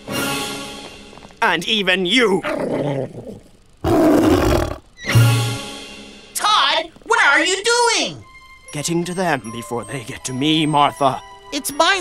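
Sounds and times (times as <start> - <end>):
cartoon monster roar: 2.4 - 4.8.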